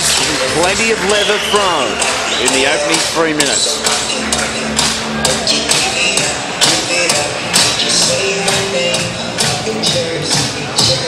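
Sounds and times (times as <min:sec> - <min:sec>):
music over sound system: 0:00.0 - 0:11.0.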